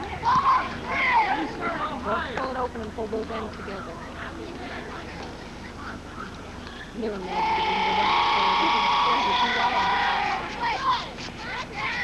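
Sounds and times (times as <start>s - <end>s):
young players cheering: 0.0s - 1.7s, 7.3s - 12.0s
faint chatter: 0.0s - 12.0s.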